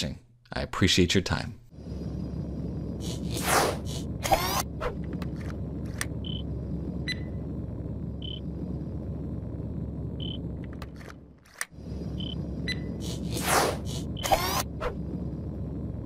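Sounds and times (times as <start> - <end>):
low electronic rumble: 1.7 - 16.0.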